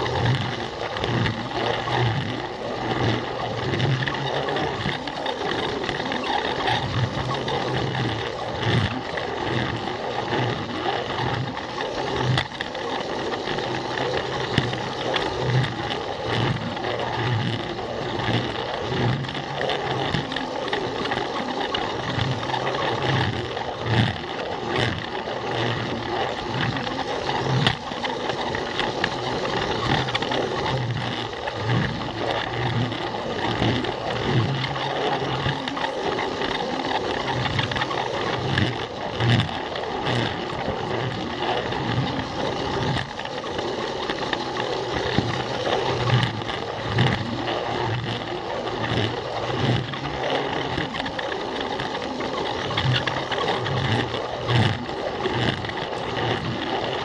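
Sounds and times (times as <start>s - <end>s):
plastic wheels rolling on track: 0.0s - 57.0s
toy train motor running: 0.0s - 57.0s.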